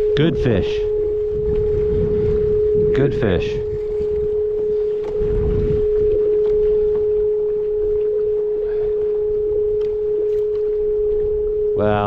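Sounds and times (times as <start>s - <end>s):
steady hum: 0.0s - 12.0s
water noise: 0.0s - 12.0s
wind: 0.0s - 12.0s.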